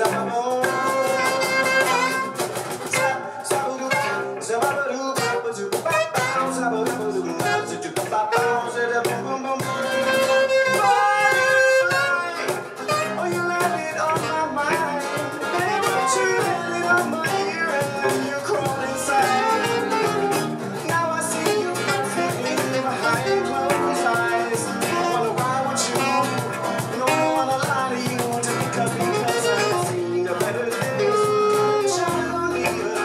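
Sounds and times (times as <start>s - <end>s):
man singing: 0.0s - 33.0s
steady beat: 0.0s - 33.0s
strummed acoustic guitar: 0.0s - 33.0s.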